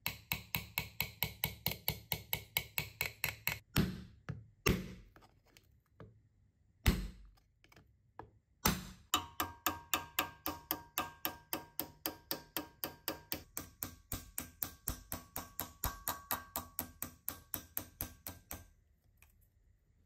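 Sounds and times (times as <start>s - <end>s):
hammer tapping sheet metal: 8.8s - 18.7s.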